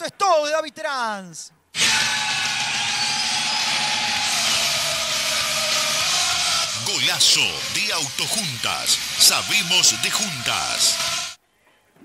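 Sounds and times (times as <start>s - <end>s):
rushing noise sound effect: 1.8s - 11.4s.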